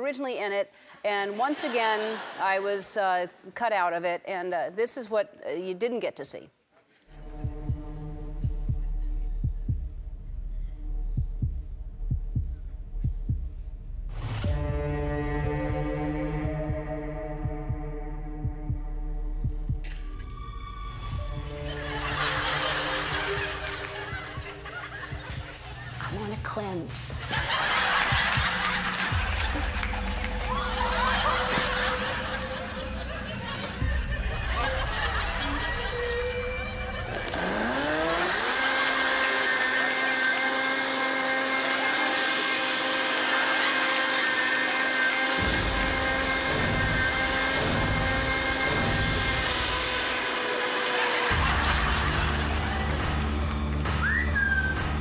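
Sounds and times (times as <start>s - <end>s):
low heartbeat-like thumps: 7.2s - 22.6s, 27.1s - 32.0s
droning chord: 14.4s - 25.0s, 28.8s - 54.0s
blender motor whining: 35.7s - 54.0s.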